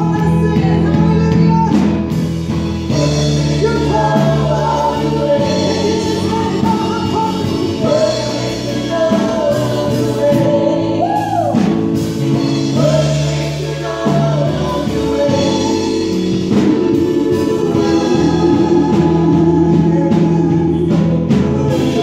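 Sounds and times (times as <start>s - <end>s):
woman singing gospel lead: 0.0s - 2.2s, 2.9s - 22.0s
keyboard and bass guitar band: 0.0s - 22.0s
backing singers: 2.9s - 22.0s.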